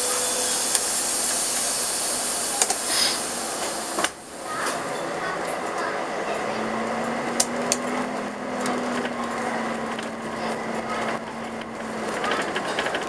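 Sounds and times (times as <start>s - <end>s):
bus cabin hum: 0.0s - 13.0s
road noise: 0.0s - 13.0s
bus body knocks and rattles: 8.6s - 13.0s.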